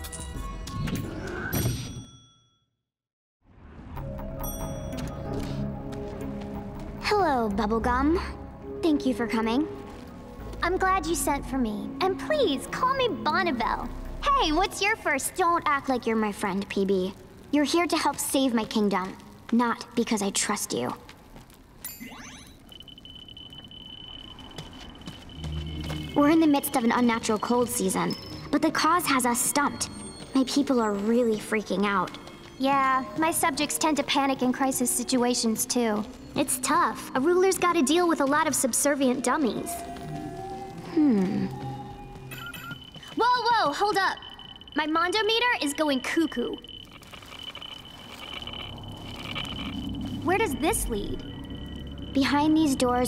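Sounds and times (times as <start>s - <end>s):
steady high electronic tone: 39.6s - 53.0s
electronic gadget rising whine: 46.6s - 53.0s
low hum: 46.6s - 53.0s.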